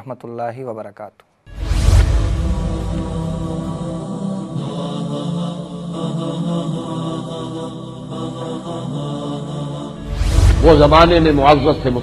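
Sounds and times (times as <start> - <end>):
wordless vocal chant: 1.8 - 12.0.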